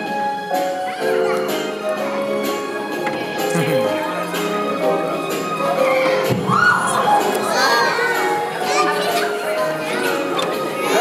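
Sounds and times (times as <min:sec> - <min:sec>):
music: 0:00.0 - 0:11.0
children calling out and chattering: 0:00.1 - 0:11.0.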